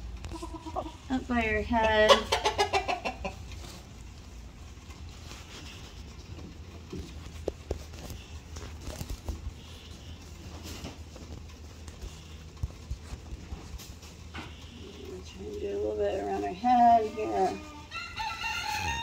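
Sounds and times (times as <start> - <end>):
chickens calling softly: 0.3 - 4.0, 7.1 - 19.0
rustling and small taps: 3.4 - 14.7
rooster crowing: 17.6 - 19.0.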